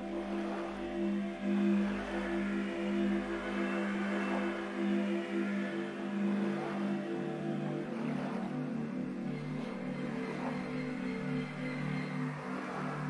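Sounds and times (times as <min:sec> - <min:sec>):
slow ambient music: 0:00.0 - 0:13.0.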